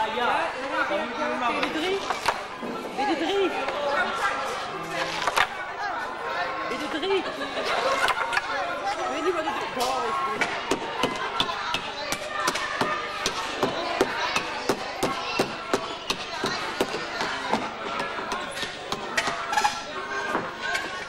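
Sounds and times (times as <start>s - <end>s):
chatter of voices: 0.0s - 21.0s.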